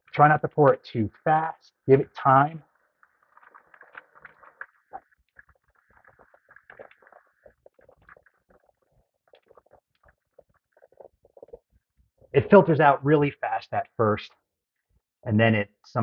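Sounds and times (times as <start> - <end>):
liquid splashing and trickling: 2.5 - 12.4.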